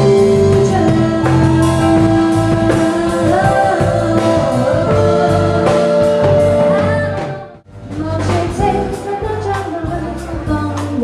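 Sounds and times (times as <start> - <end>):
drum kit: 0.0 - 11.0
electric bass: 0.0 - 11.0
keyboard: 0.0 - 11.0
woman singing: 0.0 - 11.0.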